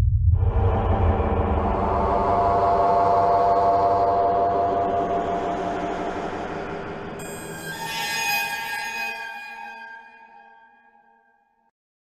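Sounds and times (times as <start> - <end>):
eerie held chord drone: 0.3 - 10.7
ringing tone: 7.2 - 11.2.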